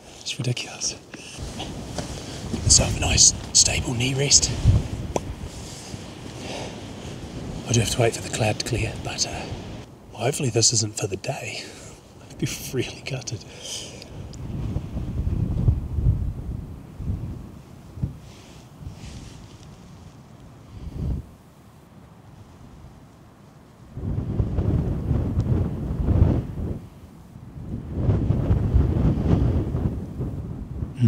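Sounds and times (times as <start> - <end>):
wind buffeting microphone: 1.4 - 10.1, 14.0 - 21.4, 23.8 - 31.0.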